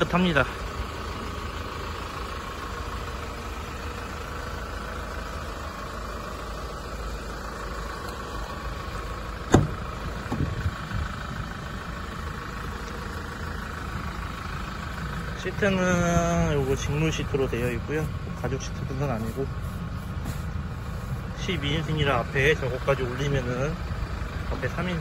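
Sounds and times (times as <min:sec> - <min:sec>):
van engine idling: 0:00.0 - 0:25.0
door opening click and knocks: 0:09.5 - 0:10.5.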